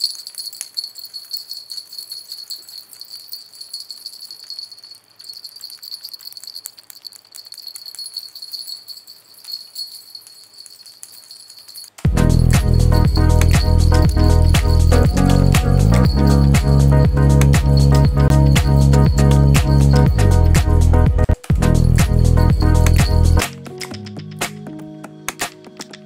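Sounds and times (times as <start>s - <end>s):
fine high jingling rattle: 0.0s - 23.5s.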